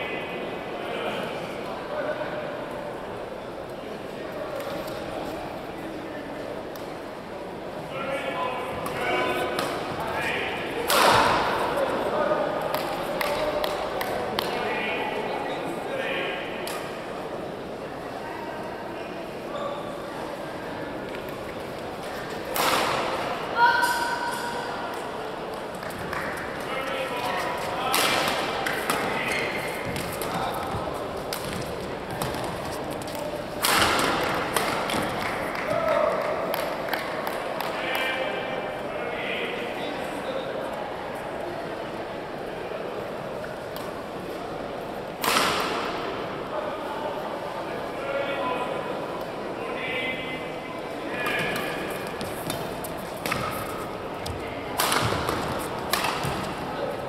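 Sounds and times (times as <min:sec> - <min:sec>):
voices in a hall: 0:00.0 - 0:57.0
racket striking shuttlecock: 0:54.8 - 0:56.5.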